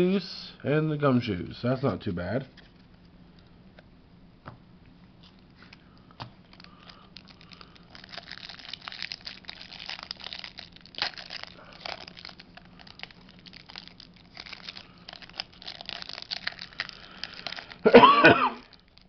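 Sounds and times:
plastic wrapping crinkling and tearing: 5.2 - 19.0.

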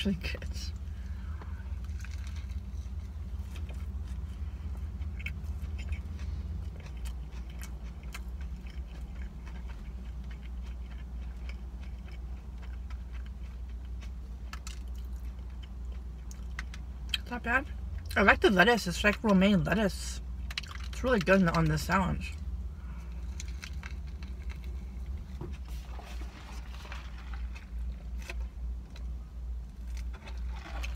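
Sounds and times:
steady low hum: 0.0 - 30.9
person chewing crunchy food: 0.7 - 17.2, 20.3 - 30.9.

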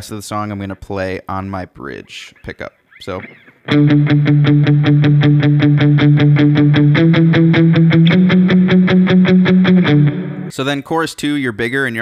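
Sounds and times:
electric guitar picking notes: 3.2 - 10.5.

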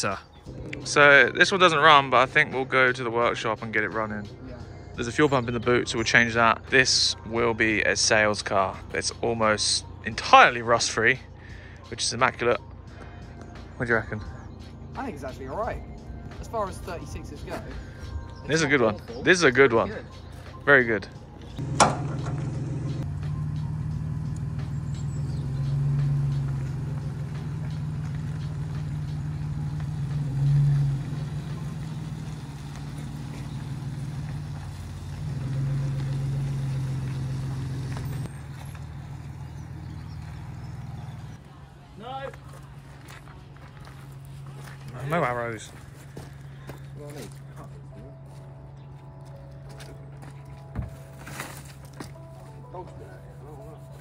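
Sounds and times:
suv engine running under load: 21.6 - 41.4.

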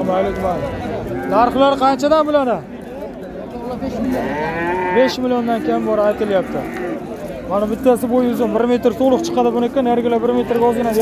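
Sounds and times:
calf mooing: 4.2 - 6.9.

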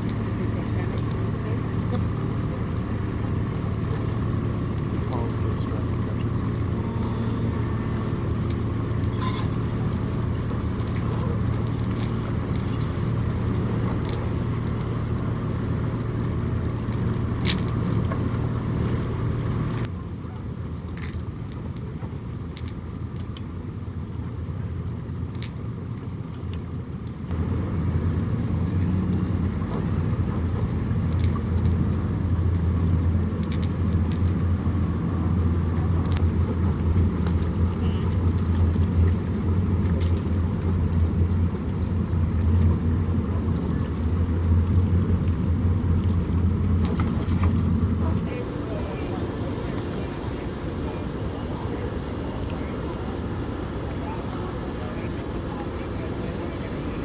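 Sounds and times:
boat engine idling: 0.0 - 57.0
faint background voices: 48.0 - 57.0.

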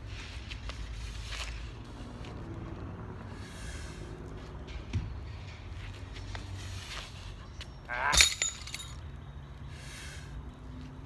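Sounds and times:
metal clinks: 8.0 - 9.1.

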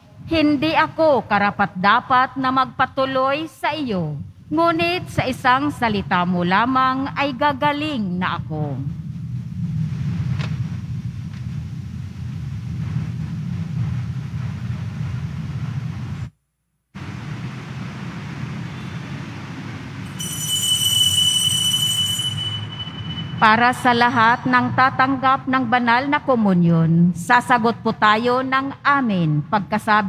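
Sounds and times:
low room rumble: 0.0 - 20.2
high steady ringing tone: 20.0 - 24.6.

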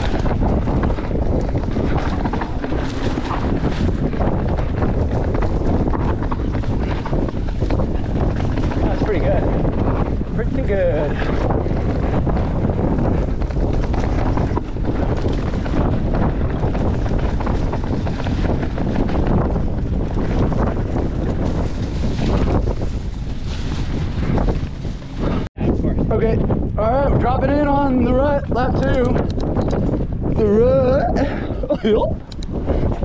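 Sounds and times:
bike tyres rattling over dirt: 0.0 - 33.0
wind rushing over microphone: 0.0 - 33.0.

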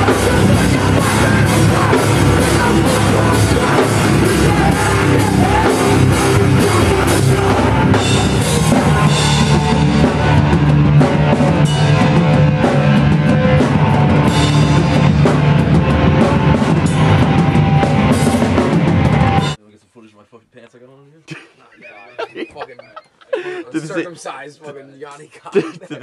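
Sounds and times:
drums and cymbals: 0.0 - 19.6
punk band playing loud: 0.0 - 19.6.

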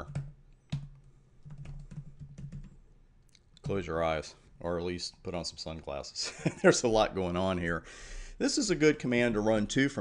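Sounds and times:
computer keyboard keystrokes: 0.0 - 2.8.

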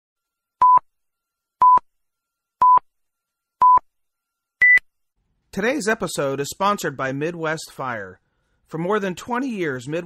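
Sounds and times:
short electronic beeps: 3.6 - 3.8, 4.6 - 4.9.

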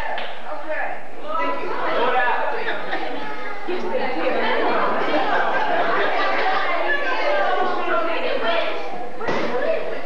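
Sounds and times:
many people talking at once: 0.0 - 10.0.

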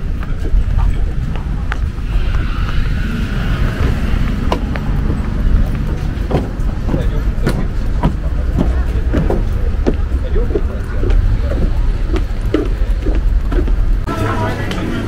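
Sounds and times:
steady low rumble: 0.0 - 15.0
voices: 0.0 - 15.0
footsteps on wooden deck: 0.1 - 14.1.

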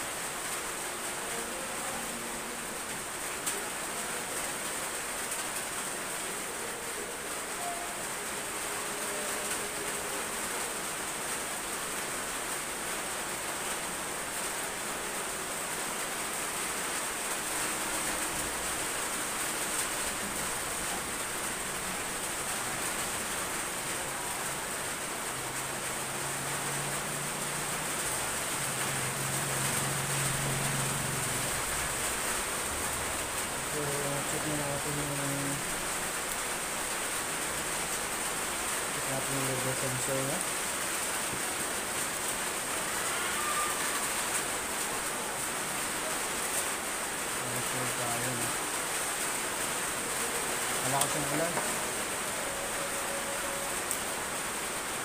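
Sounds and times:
heavy rain falling: 0.0 - 55.0.

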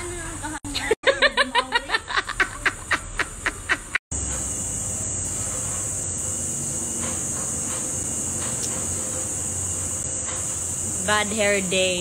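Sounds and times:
woman laughing: 0.7 - 4.0.

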